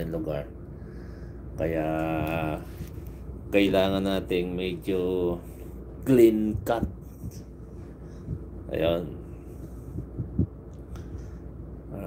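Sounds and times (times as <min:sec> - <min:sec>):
low machinery hum: 0:00.0 - 0:12.0
soft low thumps: 0:06.5 - 0:08.8, 0:09.7 - 0:11.3.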